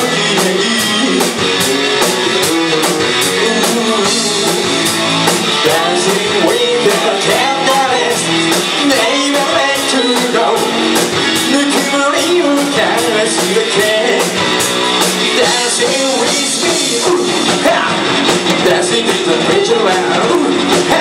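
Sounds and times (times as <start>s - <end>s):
driving hi-hat beat: 0.0s - 21.0s
live rock band playing: 0.0s - 21.0s.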